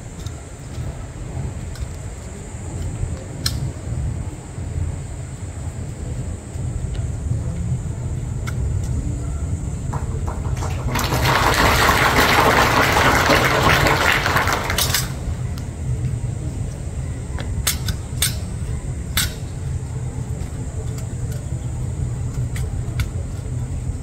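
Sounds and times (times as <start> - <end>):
steady low rumble: 0.0 - 24.0
rifles slapping and clicking: 14.7 - 15.2.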